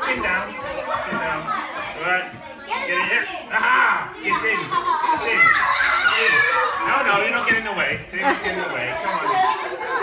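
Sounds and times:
young children talking and calling: 0.0s - 10.0s.

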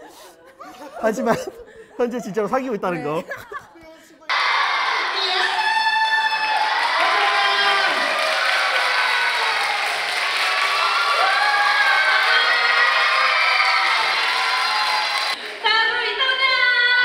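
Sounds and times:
crowd cheering and screaming: 4.3s - 15.6s.

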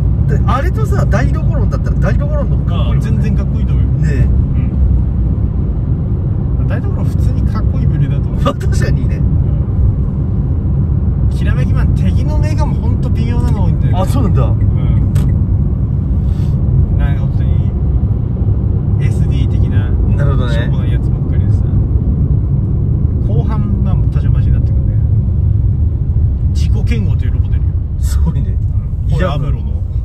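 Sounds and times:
car road and engine rumble: 0.0s - 30.0s
voices: 19.0s - 21.8s, 26.6s - 29.9s.

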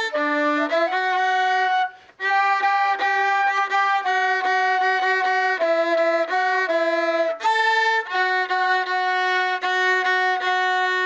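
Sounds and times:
viola and flute duet: 0.0s - 11.0s.

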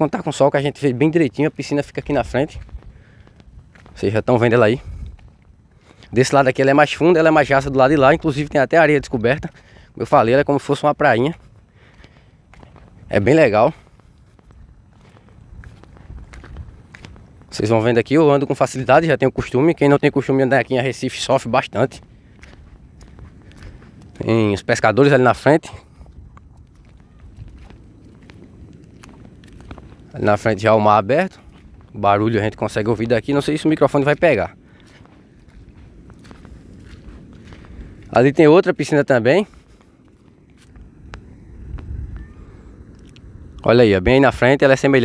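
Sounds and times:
surf breaking rumble: 0.0s - 45.0s
footsteps on rock: 2.0s - 6.2s, 11.4s - 17.6s, 22.0s - 24.6s, 25.8s - 30.8s, 33.9s - 38.2s.

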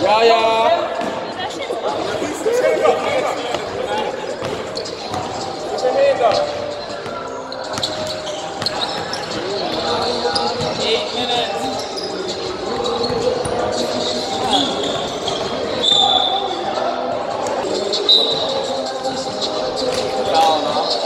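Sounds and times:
players' voices: 0.0s - 21.0s.

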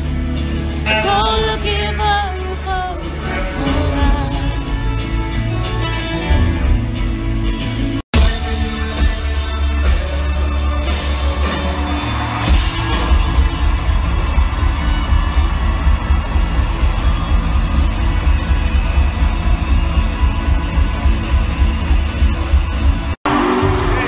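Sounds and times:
electric guitar: 0.0s - 24.0s.

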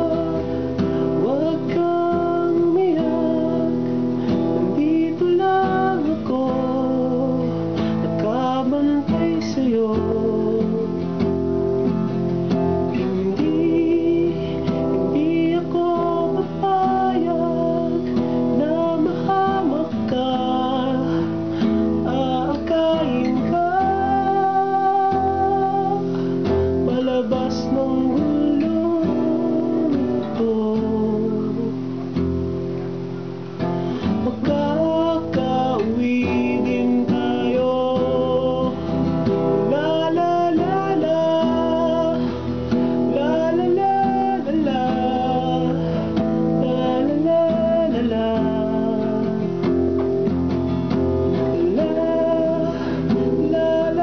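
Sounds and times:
person singing: 0.0s - 32.2s, 33.6s - 54.0s
acoustic guitar strumming: 0.0s - 54.0s.

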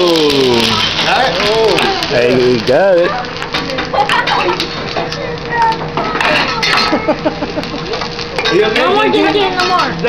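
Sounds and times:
diners chattering: 0.0s - 10.0s
metal utensils clinking on griddle: 0.0s - 10.0s.

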